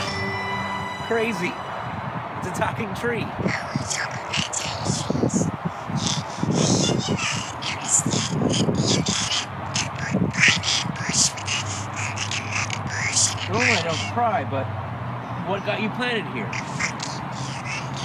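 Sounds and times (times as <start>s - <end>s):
raspy croaking voice: 3.4s - 14.2s, 15.4s - 18.0s.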